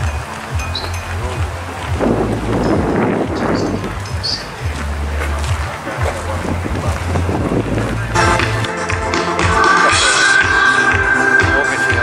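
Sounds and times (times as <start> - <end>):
distant music bass notes: 0.0 - 12.0
wind noise on microphone: 0.0 - 12.0.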